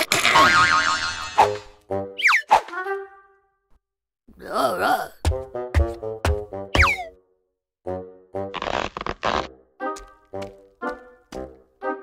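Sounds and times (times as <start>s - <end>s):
cartoon comedy music: 5.2s - 7.2s.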